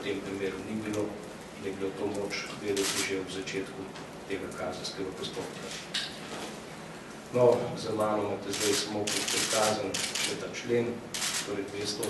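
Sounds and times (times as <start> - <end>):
man speaking into microphones: 0.0 - 5.9, 7.3 - 12.0.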